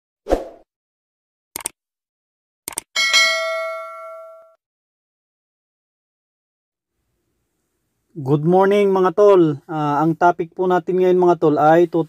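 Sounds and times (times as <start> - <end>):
notification bell ding: 3.0 - 4.6.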